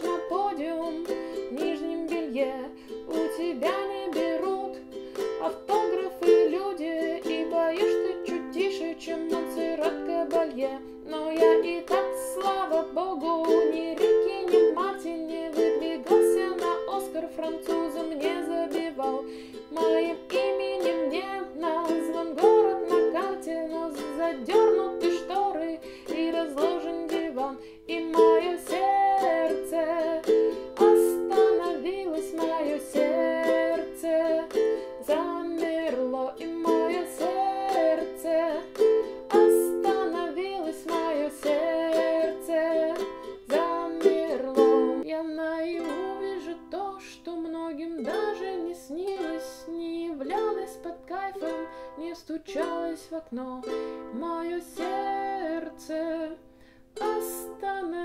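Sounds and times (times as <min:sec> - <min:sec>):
ukulele strumming: 0:00.0 - 0:58.0.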